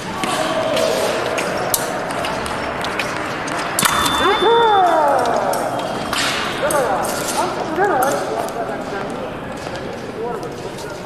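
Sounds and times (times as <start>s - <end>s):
indistinct voices calling: 0.0s - 7.8s.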